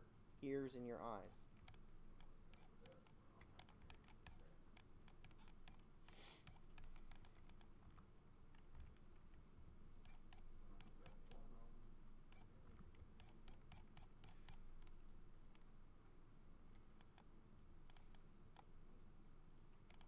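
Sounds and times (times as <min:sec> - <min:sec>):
low steady hum: 0:00.0 - 0:20.0
keyboard and mouse clicking: 0:01.5 - 0:09.4, 0:10.0 - 0:11.5, 0:12.3 - 0:15.7, 0:16.7 - 0:17.3, 0:17.9 - 0:18.7, 0:19.7 - 0:20.0.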